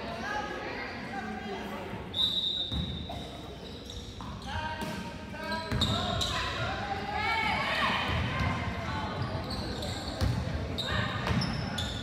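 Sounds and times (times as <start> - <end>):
referee's whistle: 2.1 - 3.1.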